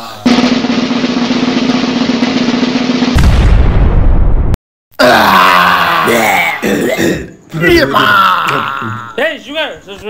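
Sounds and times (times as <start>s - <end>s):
man's wavering vocal calls: 5.0s - 9.2s.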